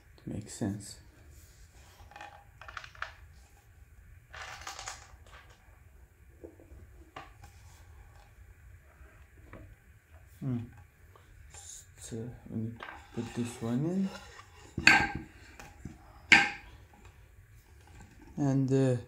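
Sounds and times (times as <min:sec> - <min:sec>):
rubbing scrape: 0:12.8 - 0:16.5.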